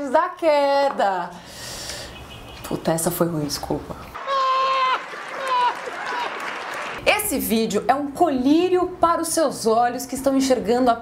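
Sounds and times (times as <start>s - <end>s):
man's high laugh: 4.2s - 6.5s
audience laughing and applauding: 4.2s - 7.0s.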